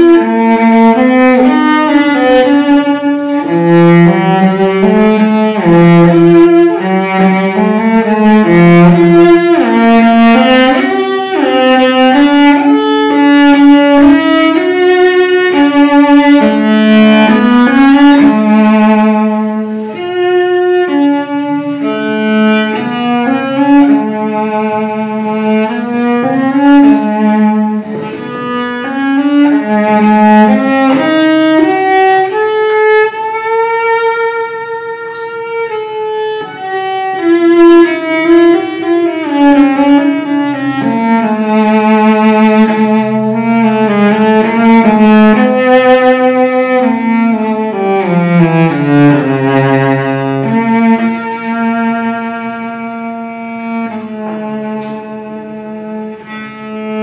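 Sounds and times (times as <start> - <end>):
bowed cello melody: 0.0 - 57.0.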